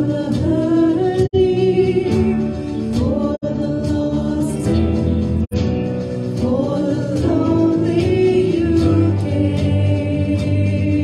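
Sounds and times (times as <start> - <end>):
women singing: 0.0 - 5.2, 6.2 - 11.0
bass guitar: 0.0 - 11.0
drums: 0.0 - 11.0
electric guitars: 0.0 - 11.0
piano: 0.0 - 11.0.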